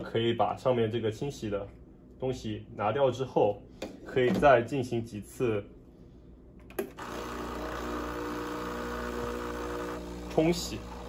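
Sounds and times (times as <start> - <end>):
espresso machine pump humming: 6.7 - 11.0.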